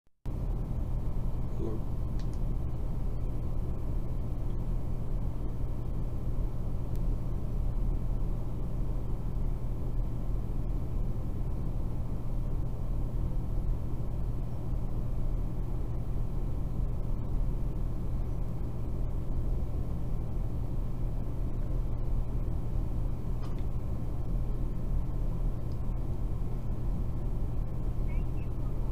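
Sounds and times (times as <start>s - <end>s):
low rumble with hum: 0.3s - 28.9s.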